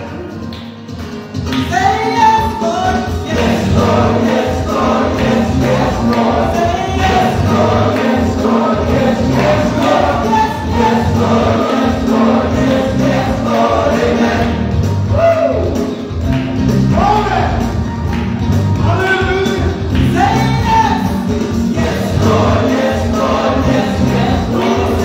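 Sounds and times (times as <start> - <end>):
accompanying music: 0.0 - 25.0
group singing gospel song: 1.8 - 16.1, 20.0 - 25.0.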